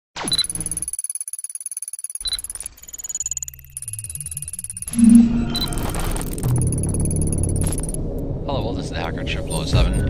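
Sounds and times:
short high beeps: 0.3 - 8.0
stuttering electronic pulse: 2.2 - 8.2
steady high and low tones: 2.3 - 8.6
electronic falling sweep: 4.8 - 6.6.

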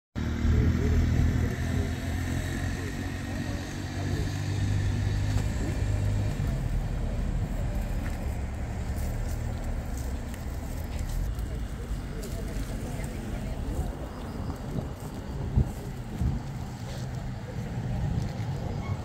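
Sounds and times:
vehicle engine running: 0.2 - 19.0.

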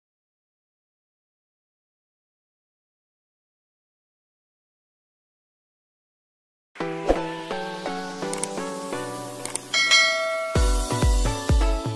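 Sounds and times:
background music: 6.8 - 11.9
click and bell-like chime: 9.4 - 10.8
heavy bass beat: 9.9 - 11.8.

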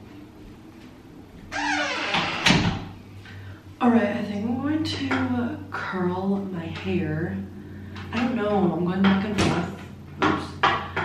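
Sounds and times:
wooden door creaking on hinges: 1.5 - 3.0.

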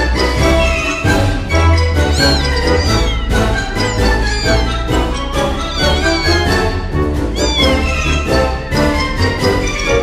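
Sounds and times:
background music: 0.0 - 10.0
kitten meowing: 0.6 - 6.6, 7.3 - 8.4.

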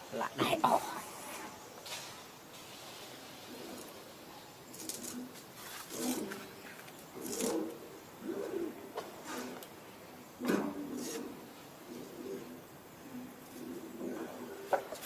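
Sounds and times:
dove cooing: 3.4 - 15.0.

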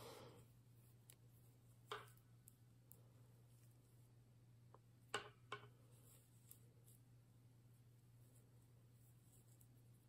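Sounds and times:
low steady hum: 0.0 - 10.0
knitting needles clicking: 0.9 - 3.8
soft rustle: 5.8 - 10.0.

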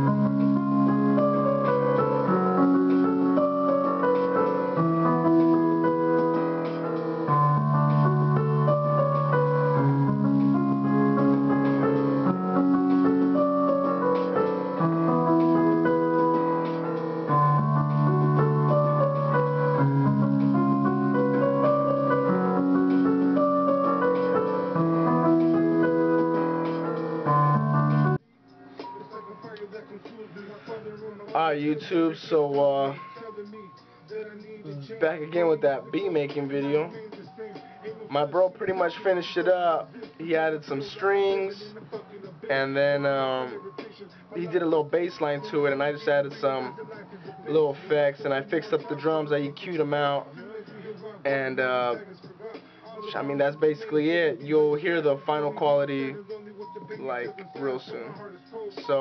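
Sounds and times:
electronic keyboard piano chords: 0.0 - 29.5, 53.0 - 58.2.

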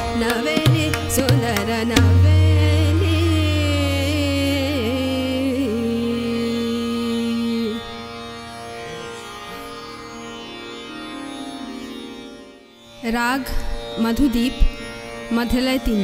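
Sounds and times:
tabla strokes: 0.0 - 5.1
woman singing: 0.0 - 8.0
harmonium: 0.0 - 16.0
tanpura drone: 0.0 - 16.0.

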